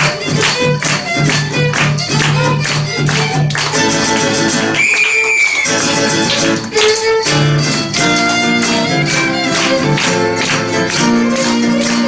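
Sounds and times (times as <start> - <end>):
strummed guitar chords: 0.0 - 4.8, 5.6 - 12.0
violin melody: 0.0 - 12.0.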